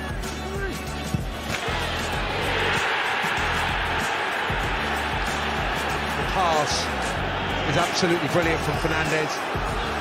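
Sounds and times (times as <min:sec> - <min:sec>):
stadium crowd cheering: 0:01.4 - 0:10.0.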